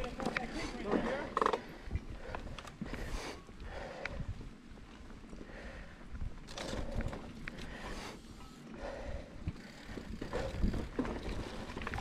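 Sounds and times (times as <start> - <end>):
bike tyre rumble on dirt: 0.0 - 12.0
bike knocking and rattling: 6.4 - 12.0
wind on microphone: 9.1 - 12.0.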